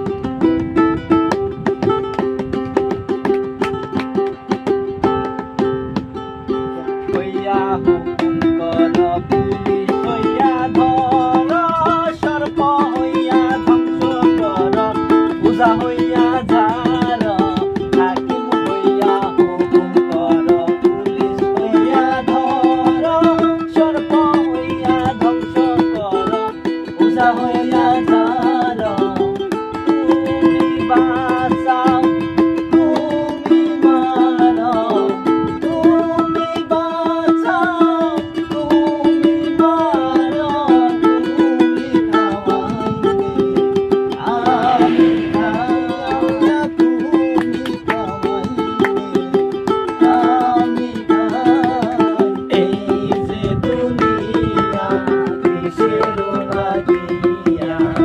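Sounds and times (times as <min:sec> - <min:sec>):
strummed ukulele: 0:00.0 - 0:58.0
men singing folk song: 0:06.8 - 0:58.0.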